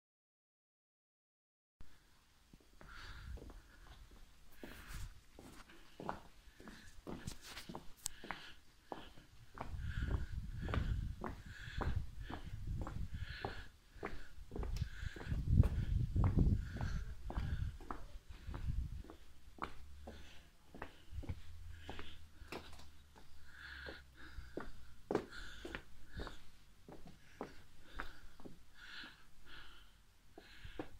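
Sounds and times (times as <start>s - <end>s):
footsteps on cobblestones: 2.5s - 30.9s.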